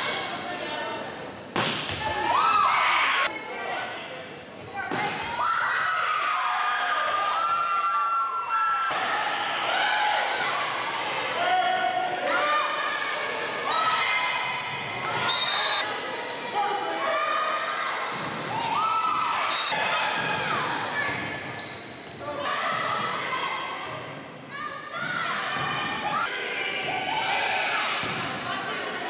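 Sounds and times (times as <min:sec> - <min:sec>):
volleyball hits: 0:01.5 - 0:02.2
shoe squeaks: 0:21.0 - 0:22.0.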